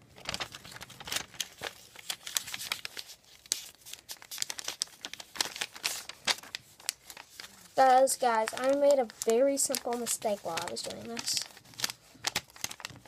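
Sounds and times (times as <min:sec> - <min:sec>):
paper being folded and creased: 0:00.0 - 0:13.0.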